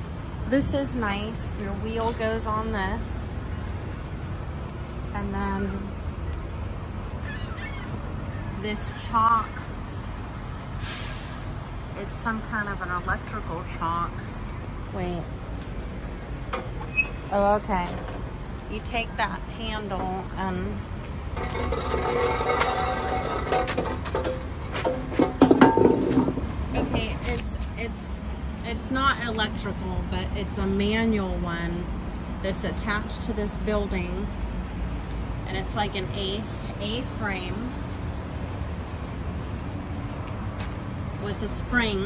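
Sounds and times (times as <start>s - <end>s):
metal scraping slide: 21.4s - 26.4s.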